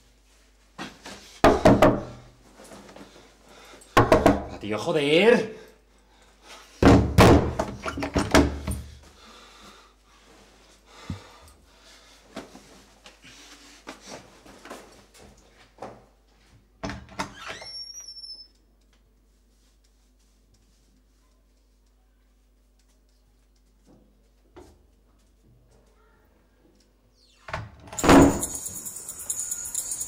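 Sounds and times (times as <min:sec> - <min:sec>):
wooden door pounded and rattled: 0:01.5 - 0:02.2, 0:04.0 - 0:04.6, 0:06.8 - 0:08.7, 0:28.0 - 0:28.6.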